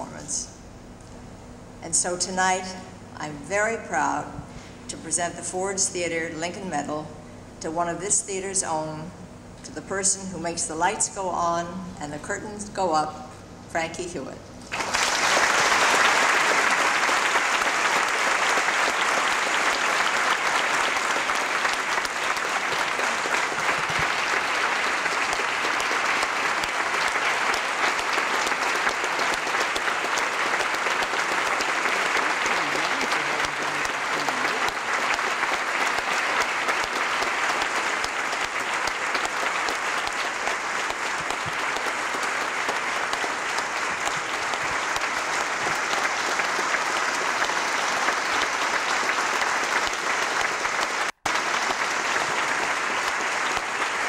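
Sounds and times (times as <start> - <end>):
audience applauding: 14.7 - 54.0.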